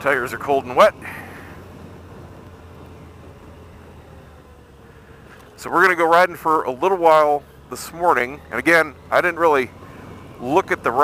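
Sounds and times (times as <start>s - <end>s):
motorcycle engine running: 0.0s - 11.0s
road and wind noise: 0.0s - 11.0s.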